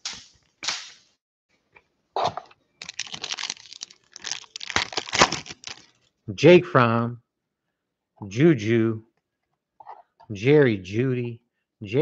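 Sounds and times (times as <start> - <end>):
cards rustling: 2.8 - 6.0
foil wrapper crinkling and tearing: 2.8 - 6.1.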